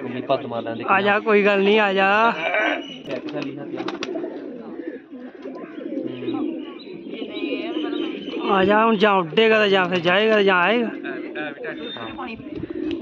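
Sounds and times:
pigeons cooing: 0.0s - 13.0s.

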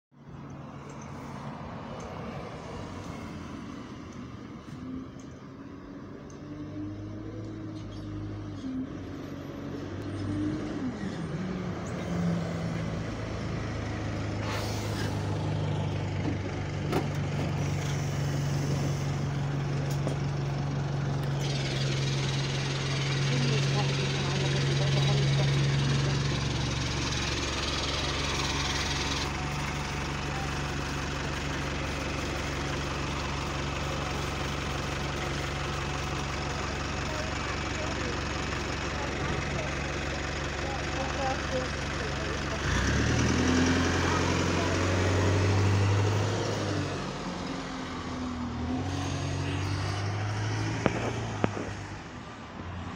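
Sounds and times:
diesel bus engine idling: 0.2s - 52.9s.

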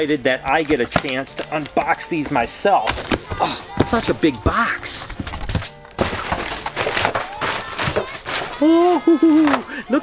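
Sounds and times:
crumpled newspaper rustling: 0.6s - 10.0s
cardboard flaps knocking and scraping: 2.2s - 9.7s.

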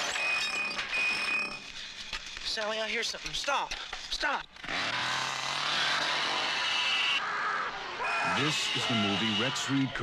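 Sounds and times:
chainsaw running at high revs: 4.6s - 7.2s.

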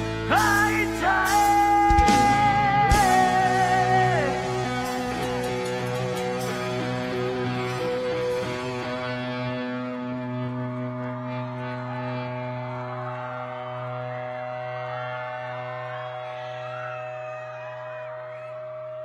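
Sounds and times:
live rock band holding a chord: 0.0s - 17.4s
crowd voices: 0.8s - 19.0s.

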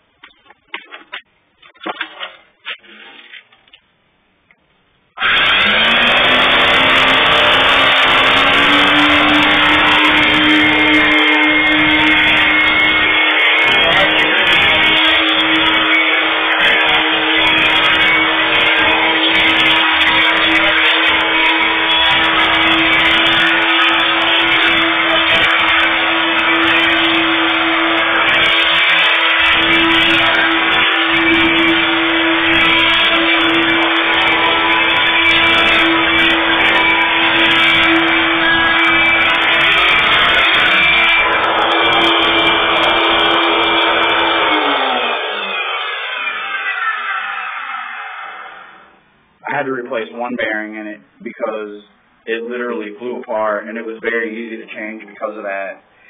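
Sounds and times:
vacuum cleaner motor hum: 5.2s - 46.3s
vacuum motor winding down: 5.2s - 48.9s.

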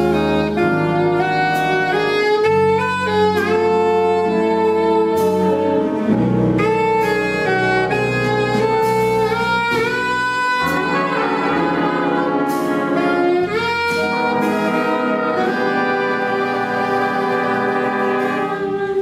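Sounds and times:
jazz big band playing: 0.0s - 19.0s.

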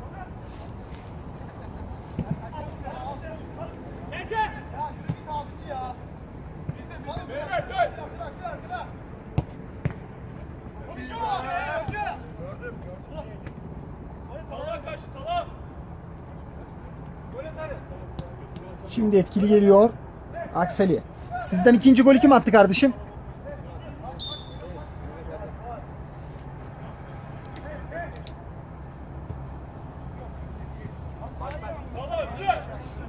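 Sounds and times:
players shouting: 1.6s - 6.0s, 6.7s - 9.0s, 10.7s - 13.4s, 14.2s - 15.7s, 19.0s - 25.9s, 30.1s - 33.0s
football being kicked: 9.3s - 10.0s.

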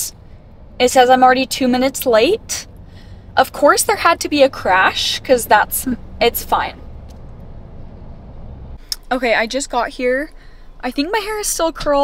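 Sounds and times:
car rumble inside cabin: 0.0s - 12.0s.

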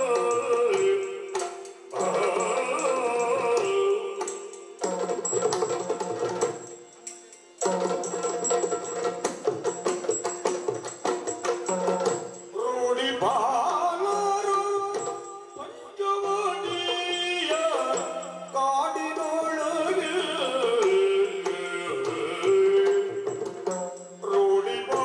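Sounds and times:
person singing: 0.0s - 4.9s, 12.5s - 25.0s
drums playing rhythmic strokes: 0.0s - 15.6s, 16.2s - 25.0s.

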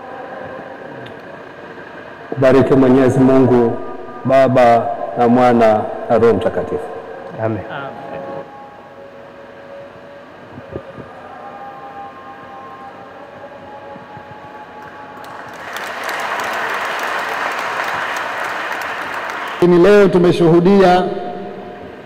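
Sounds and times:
congregation applauding: 14.8s - 20.6s.

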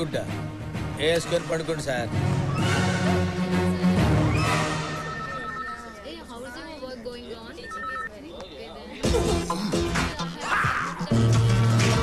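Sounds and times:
chatter of many voices: 3.1s - 12.0s.

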